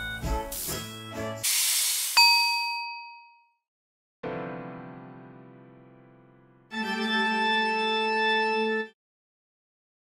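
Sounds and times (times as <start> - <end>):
cheerful cartoon music: 0.0 - 1.6, 4.2 - 9.0
bright bell-like ding: 2.2 - 3.6.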